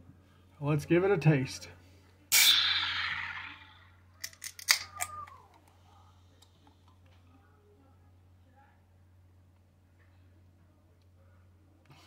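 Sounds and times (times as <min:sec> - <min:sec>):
can pull-tab crack: 0:02.3 - 0:03.2, 0:04.2 - 0:05.2
gas hissing from can: 0:02.3 - 0:03.5.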